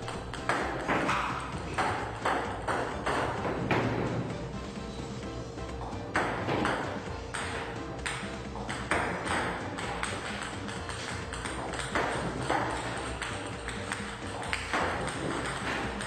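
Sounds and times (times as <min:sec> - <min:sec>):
table tennis ball tapping: 0:00.0 - 0:04.0, 0:06.1 - 0:16.0
background music: 0:00.0 - 0:16.0.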